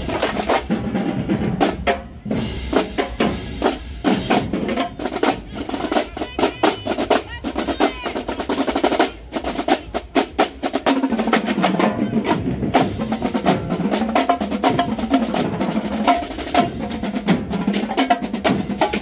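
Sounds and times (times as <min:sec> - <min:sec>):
drumline playing snare and tenor drums: 0:00.0 - 0:19.0.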